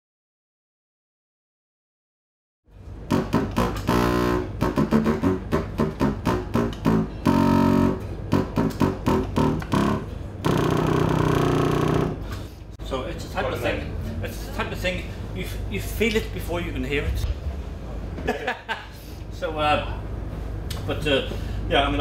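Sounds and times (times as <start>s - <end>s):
contrabassoon playing deep notes: 3.0s - 12.3s.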